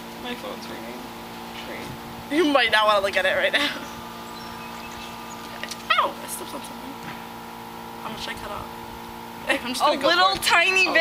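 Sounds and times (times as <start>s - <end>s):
low background hum: 0.0s - 11.0s
person crying out ow: 5.9s - 6.4s.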